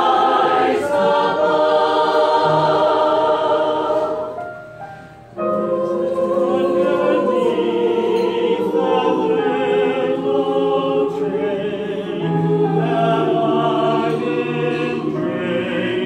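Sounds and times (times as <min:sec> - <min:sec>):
mixed choir singing in harmony: 0:00.0 - 0:16.0.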